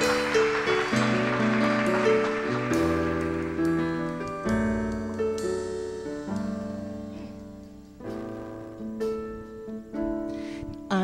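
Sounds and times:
piano chords on keyboard: 0:00.0 - 0:11.0.

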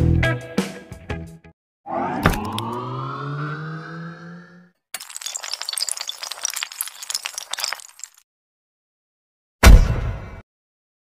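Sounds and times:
held rising tone: 0:01.9 - 0:04.7
glass-shattering effect: 0:05.0 - 0:08.2.

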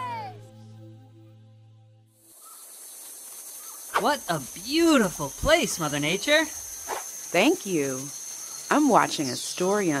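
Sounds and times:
held music chord: 0:00.0 - 0:02.2
forest insects chorus: 0:02.2 - 0:10.0.

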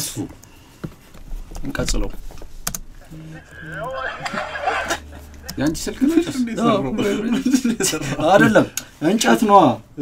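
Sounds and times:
person speaking: 0:03.1 - 0:08.7.

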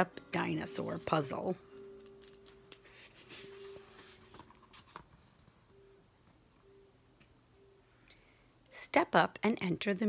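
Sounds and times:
book page turning: 0:01.8 - 0:05.2.

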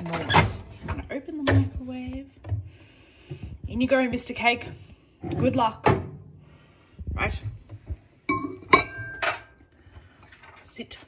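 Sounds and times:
ceramic mug clinking on glass plate: 0:08.3 - 0:09.3.

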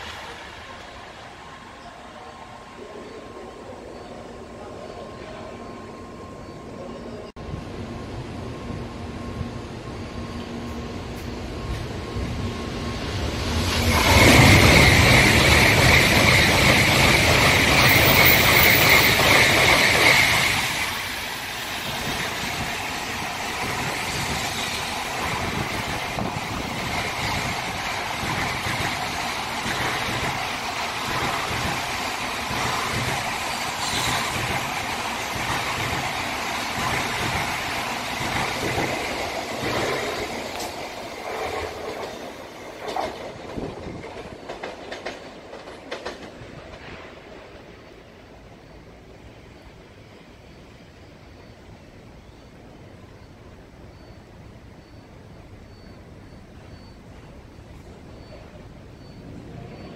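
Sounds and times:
train passing on tracks: 0:00.0 - 0:59.9
wheels rumbling on rail: 0:00.0 - 0:59.9
sharp clacks of wheels: 0:38.2 - 0:46.9.

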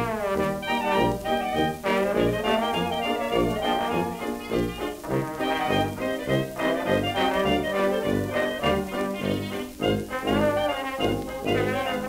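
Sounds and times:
hot jazz band on old record: 0:00.0 - 0:12.0.

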